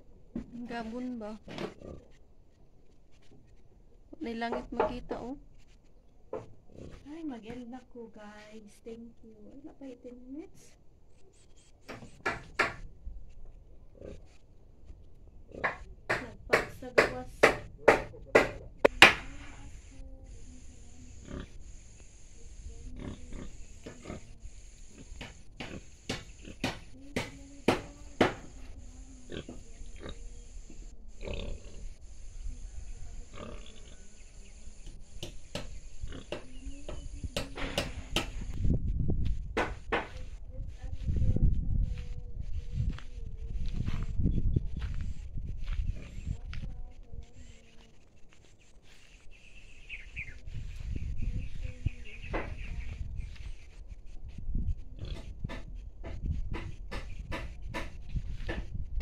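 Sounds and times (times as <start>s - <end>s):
animal grunts: 1.6s - 2.2s, 6.7s - 7.1s, 13.9s - 14.4s, 21.1s - 21.6s, 22.8s - 26.7s, 29.2s - 32.0s, 33.2s - 34.1s, 55.0s - 55.4s
scattered knocks: 11.9s - 12.8s, 15.6s - 19.3s, 25.2s - 28.6s, 35.2s - 38.5s, 39.5s - 40.2s, 55.1s - 58.7s
high insect drone: 19.0s - 38.5s
steady low rumble: 38.1s - 47.6s.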